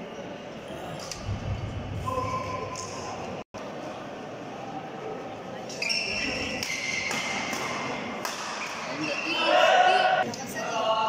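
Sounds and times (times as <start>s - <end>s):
murmur of voices: 0.0s - 11.0s
court shoes squeaking: 5.6s - 9.6s.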